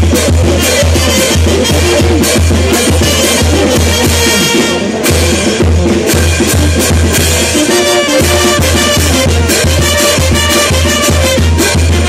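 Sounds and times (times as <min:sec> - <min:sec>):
drums: 0:00.0 - 0:12.0
trumpets playing: 0:00.1 - 0:12.0.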